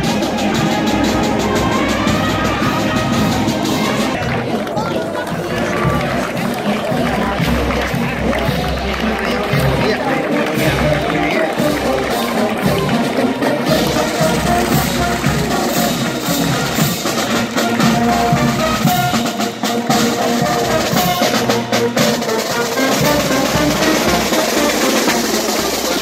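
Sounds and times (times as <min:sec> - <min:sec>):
bass drum and snare drums beating: 0:00.0 - 0:26.0
brass instruments holding notes: 0:00.0 - 0:26.0.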